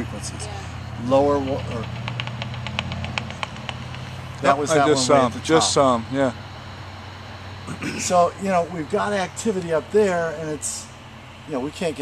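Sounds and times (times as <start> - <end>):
steady low hum: 0.0 - 12.0
bat detector clicks: 1.8 - 4.1.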